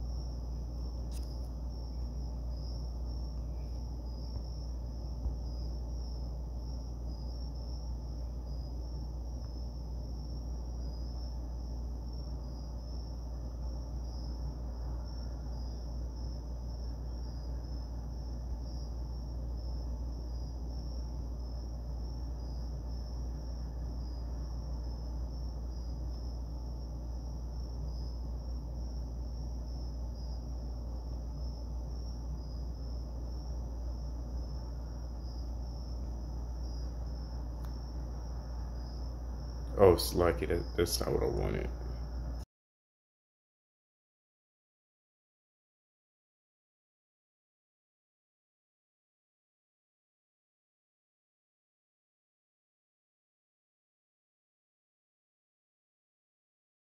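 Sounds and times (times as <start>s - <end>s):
faint high-pitched pulsing trill: 0.0s - 42.4s
strong low hum: 0.0s - 42.4s.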